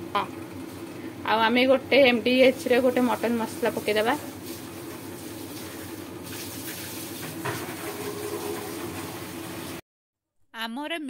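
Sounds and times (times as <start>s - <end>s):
spices sizzling in oil: 2.5s - 9.8s.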